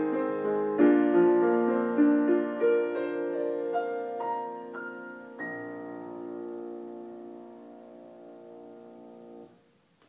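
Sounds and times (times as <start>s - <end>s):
piano chord ringing: 0.0s - 9.6s.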